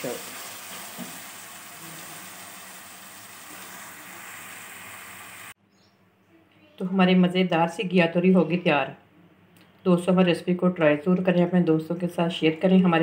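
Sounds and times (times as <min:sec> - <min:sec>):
curry sizzling in a pot: 0:00.0 - 0:05.6.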